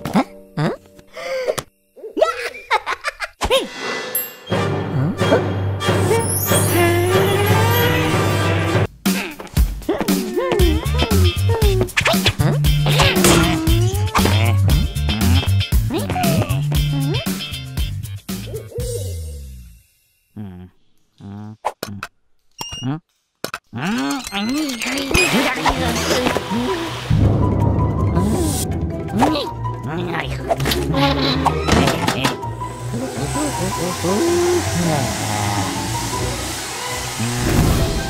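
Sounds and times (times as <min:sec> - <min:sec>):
music: 0:00.0 - 0:02.0, 0:03.7 - 0:19.9, 0:25.1 - 0:38.0
electric hand dryer blowing: 0:32.4 - 0:38.0.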